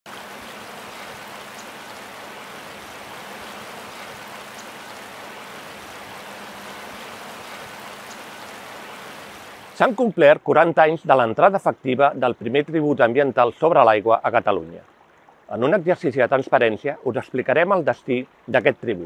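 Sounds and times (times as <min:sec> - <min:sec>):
river water running over stones: 0:00.1 - 0:19.0.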